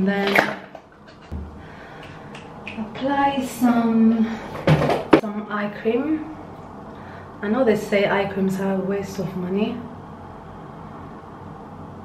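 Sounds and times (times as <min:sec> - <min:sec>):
low hum: 0:01.2 - 0:04.2.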